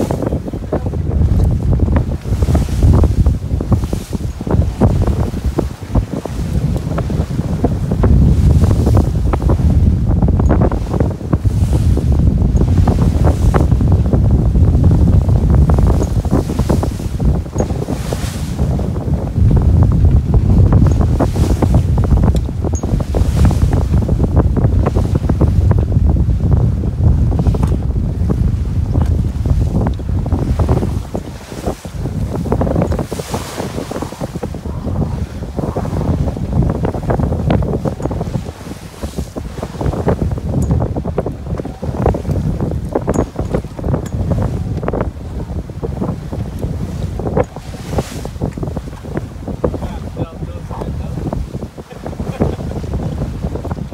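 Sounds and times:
waves rushing along hull: 0:00.0 - 0:53.9
wind buffeting microphone: 0:00.0 - 0:53.9.

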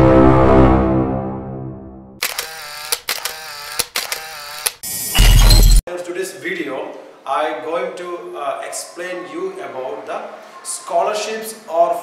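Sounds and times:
wavering whirr: 0:02.2 - 0:05.2
sharp shutter clicks: 0:02.2 - 0:05.8.

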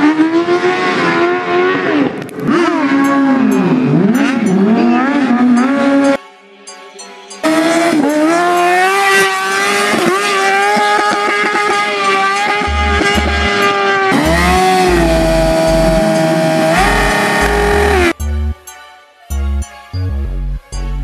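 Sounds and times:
motorcycle engine revving: 0:00.0 - 0:06.2, 0:07.4 - 0:18.2
bass-heavy music beats: 0:07.4 - 0:21.0.

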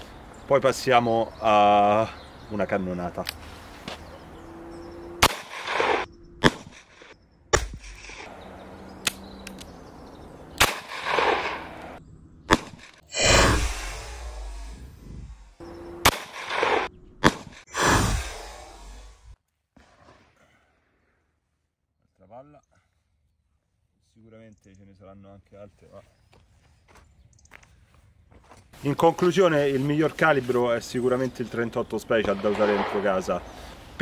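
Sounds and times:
revolver shots: 0:05.1 - 0:08.3, 0:10.6 - 0:19.4.

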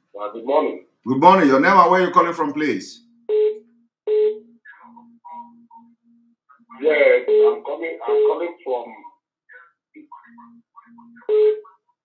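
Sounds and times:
telephone line beeps: 0:03.0 - 0:09.1, 0:10.2 - 0:11.8.

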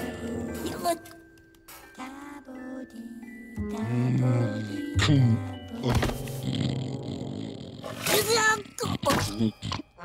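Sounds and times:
bear growling: 0:03.6 - 0:10.0.

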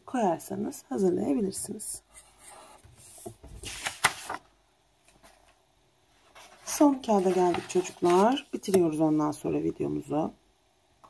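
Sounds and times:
paper sheet rustling: 0:02.3 - 0:04.5, 0:06.2 - 0:09.2.

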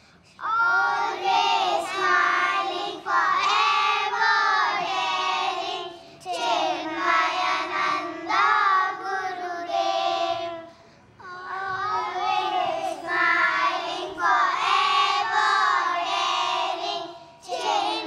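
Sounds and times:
children singing together: 0:00.4 - 0:18.0.

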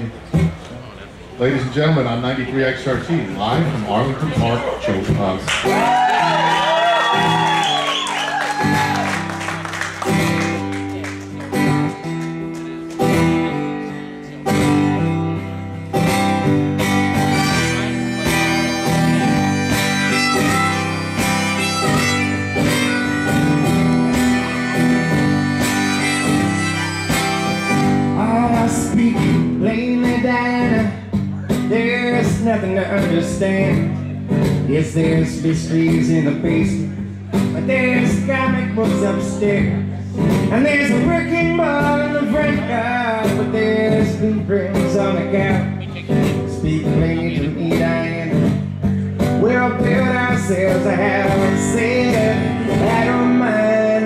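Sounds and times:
acoustic guitar strumming: 0:00.0 - 0:00.6, 0:02.9 - 0:54.0.

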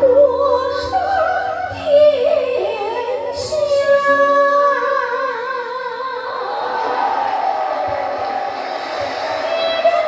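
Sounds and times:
audience cheering: 0:06.4 - 0:10.0.

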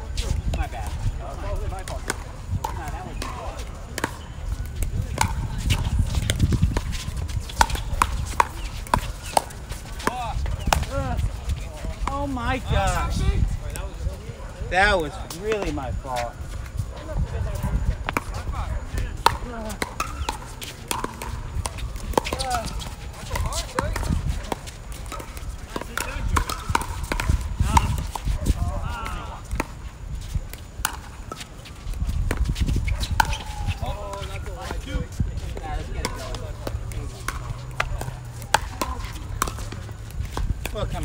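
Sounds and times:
players chatting: 0:00.0 - 0:41.0
paddles hitting plastic ball: 0:01.7 - 0:11.2, 0:19.1 - 0:34.8, 0:35.5 - 0:41.0.

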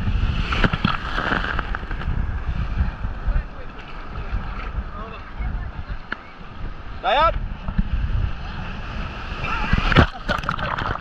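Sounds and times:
surf washing and churning: 0:00.0 - 0:11.0
wind rumbling on microphone: 0:00.0 - 0:11.0
excited voices: 0:08.3 - 0:10.3.

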